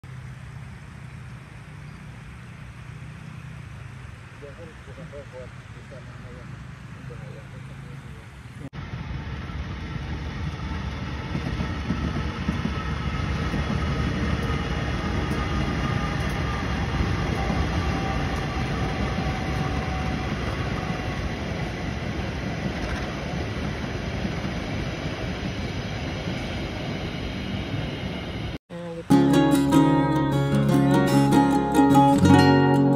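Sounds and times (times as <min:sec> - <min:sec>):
locomotive engine rumble: 0:00.0 - 0:25.8
train wheels on rails: 0:06.4 - 0:28.6.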